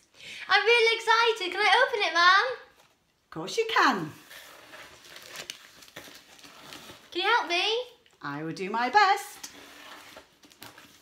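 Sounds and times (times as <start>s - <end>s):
plastic packaging crinkling: 4.5s - 7.2s.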